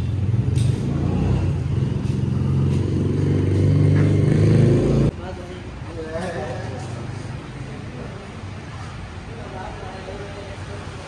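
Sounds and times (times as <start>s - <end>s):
vehicle engine rumbling: 0.0s - 5.4s.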